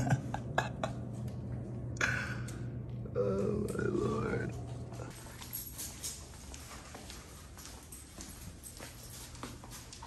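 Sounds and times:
steady low hum: 0.0 - 10.0
footsteps on hard floor: 5.3 - 10.0.

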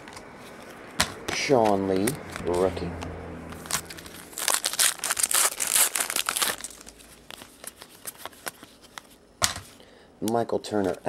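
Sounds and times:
foil wrapper crinkling: 3.6 - 9.2.

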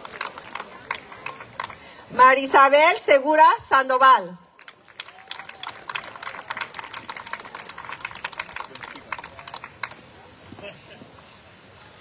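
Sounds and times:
hand claps from small audience: 0.0 - 1.8, 4.6 - 10.1
faint crowd voices: 0.0 - 3.8, 4.4 - 12.0.

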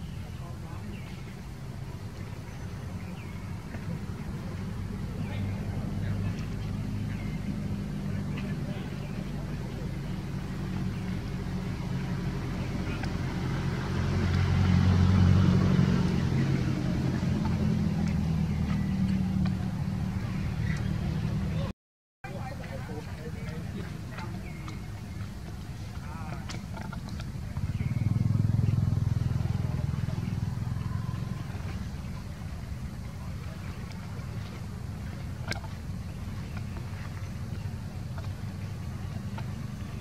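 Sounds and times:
vehicle engine running: 0.0 - 40.0.

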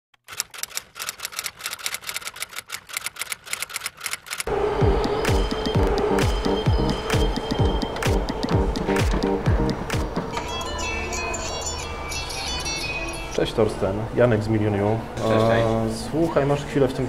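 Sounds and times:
typewriter clicks: 0.2 - 4.5
electronic music with kick drum: 4.5 - 10.4.

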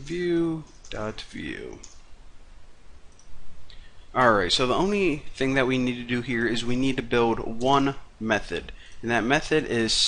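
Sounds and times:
microphone hiss: 0.0 - 10.0
computer keyboard clicks: 1.8 - 2.0.

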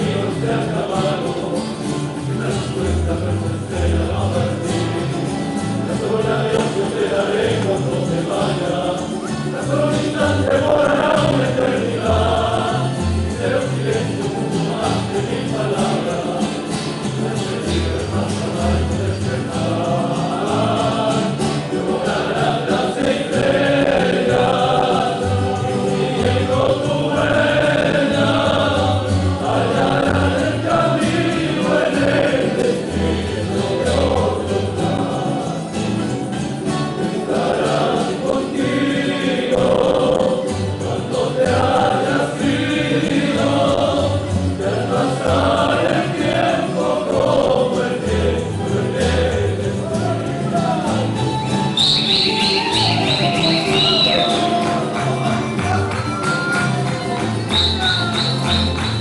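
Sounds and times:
male chorus singing: 0.0 - 59.0
strummed guitars and lutes: 0.0 - 59.0.

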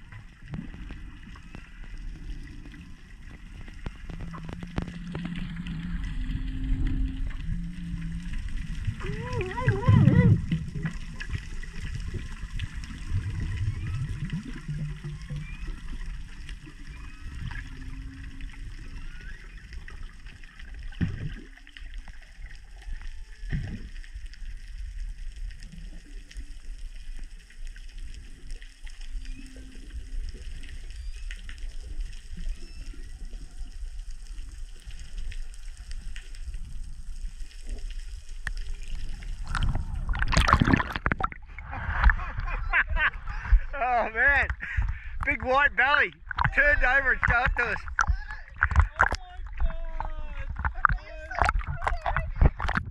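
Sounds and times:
underwater water noise: 0.0 - 52.9
humpback whale calls: 13.3 - 20.2.

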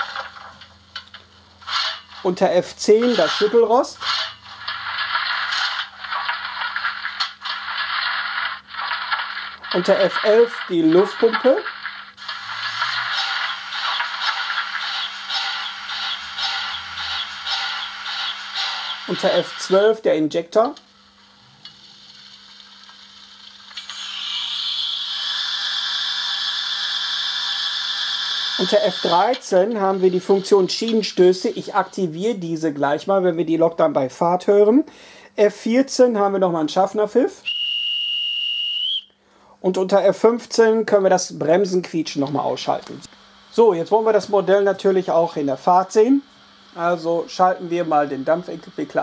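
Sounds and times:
metallic scraping rattle: 1.6 - 19.8
model locomotive steam hiss: 12.2 - 19.8, 23.7 - 30.7.

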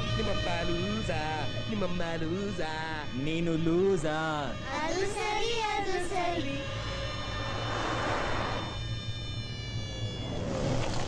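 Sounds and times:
person singing: 0.0 - 6.8
held music notes: 0.0 - 10.4
rushing whoosh: 6.8 - 8.9.

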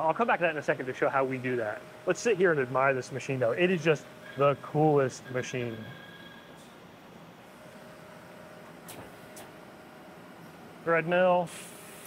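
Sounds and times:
faint steady whine: 0.0 - 12.0
hiss of coolant spray: 11.4 - 12.0.

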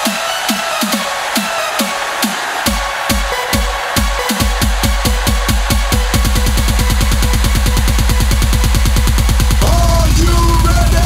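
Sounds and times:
electronic dance music: 0.0 - 11.0
fast drum roll: 0.1 - 11.0.

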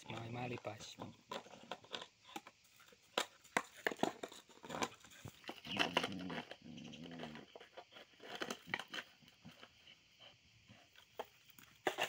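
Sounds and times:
small dog growling: 5.5 - 7.7.

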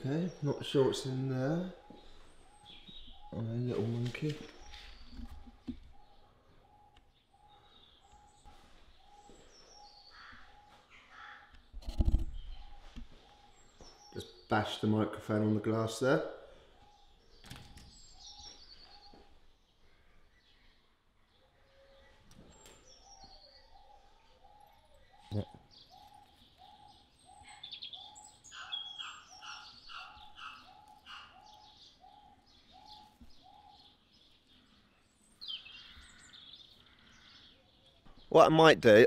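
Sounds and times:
bird chirps: 0.0 - 39.0.

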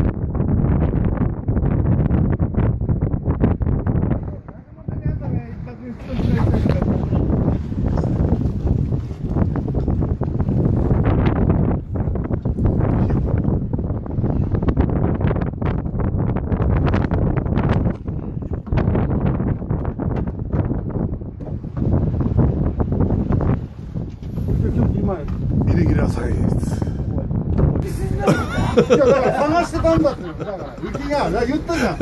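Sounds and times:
strong wind on microphone: 0.0 - 32.0.

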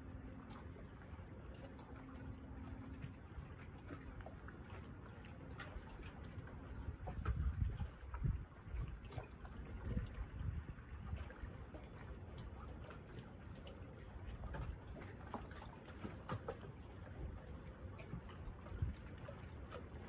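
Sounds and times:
water lapping: 0.0 - 20.0
wind buffeting microphone: 6.6 - 11.5, 18.4 - 19.3.

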